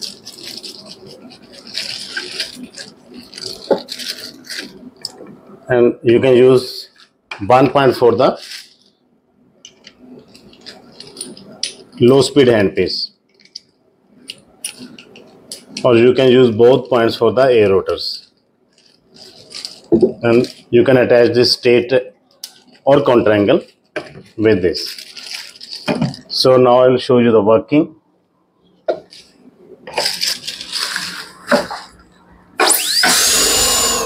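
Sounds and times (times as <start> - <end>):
gloved hands handling tubing: 0.0 - 5.4
faint low unit hum: 0.0 - 34.0.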